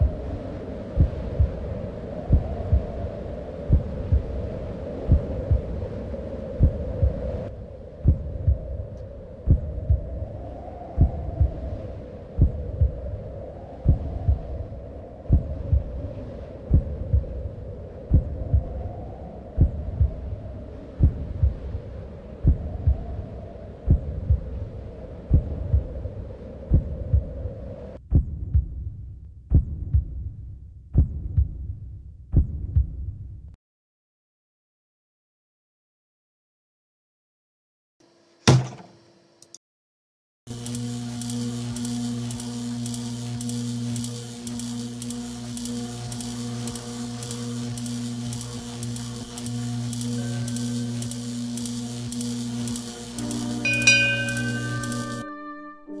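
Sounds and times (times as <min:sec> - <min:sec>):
wavering hum: 0:00.0 - 0:28.0, 0:40.5 - 0:56.0
low thuds like a heartbeat: 0:00.0 - 0:33.6.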